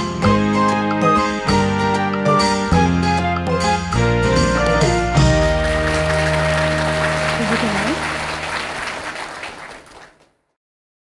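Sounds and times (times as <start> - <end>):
audience applauding: 5.2 - 10.4.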